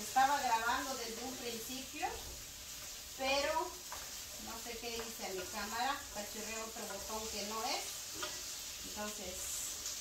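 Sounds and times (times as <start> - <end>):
woman's voice: 0.0 - 2.2, 3.2 - 3.8, 4.4 - 7.9, 8.9 - 9.7
potatoes sizzling in oil: 0.0 - 10.0
utensil stirring in pan: 0.0 - 10.0.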